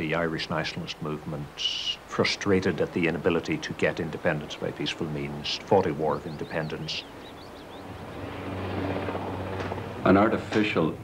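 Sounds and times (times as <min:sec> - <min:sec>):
helicopter flying low: 0:06.3 - 0:11.0.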